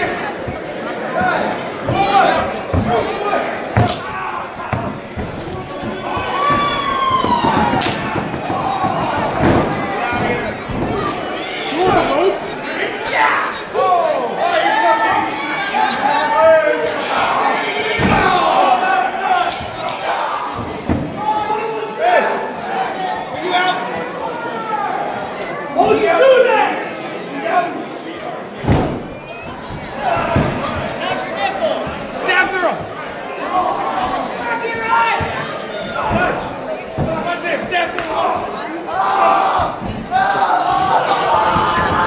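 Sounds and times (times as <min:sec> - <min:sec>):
heavy thuds on wrestling ring: 0:03.8 - 0:11.3.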